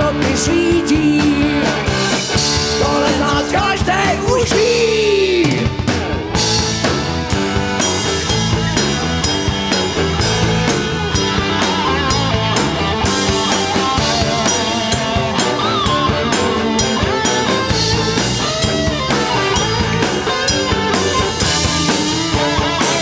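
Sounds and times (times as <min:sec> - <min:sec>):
bass guitar: 0:00.0 - 0:23.0
drum kit steady beat: 0:00.0 - 0:23.0
electric guitar: 0:00.0 - 0:23.0.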